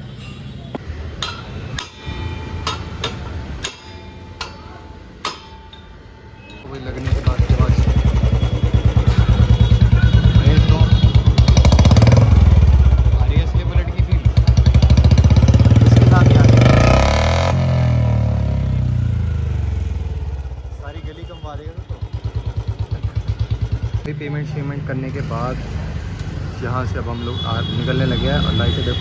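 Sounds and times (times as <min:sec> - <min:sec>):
motorcycle engine revving: 0:06.8 - 0:26.5.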